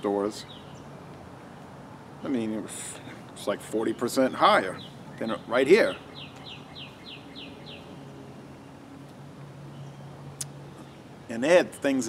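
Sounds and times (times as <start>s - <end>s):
songbird singing: 0.0s - 12.0s.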